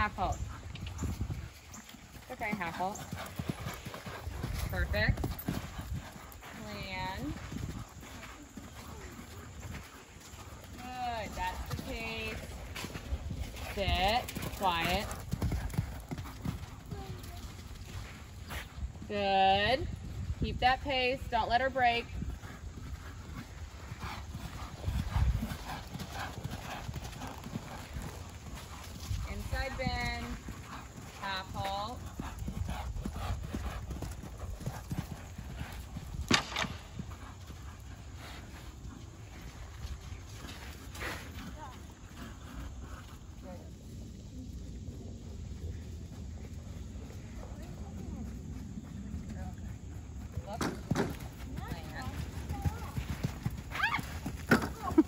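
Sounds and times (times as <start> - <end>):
horse hoofbeats on sand: 0.0 - 43.3, 45.7 - 55.0.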